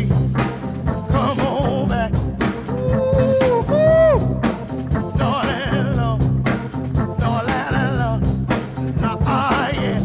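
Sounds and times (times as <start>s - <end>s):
soul-jazz with organ guitar and drums: 0.0s - 10.0s.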